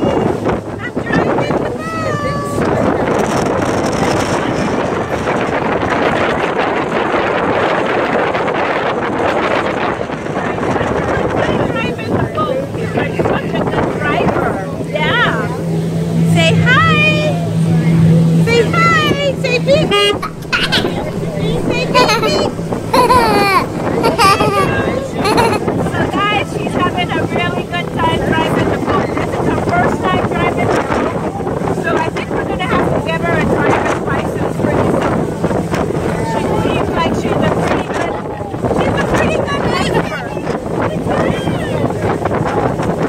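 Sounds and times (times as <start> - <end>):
people talking: 0.0 - 3.4, 18.5 - 35.0
wind and water rushing: 0.0 - 43.0
boat motor humming: 15.9 - 28.7.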